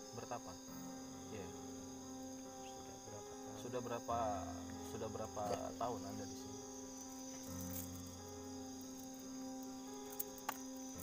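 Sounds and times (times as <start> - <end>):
crickets chirring: 0.0 - 11.0.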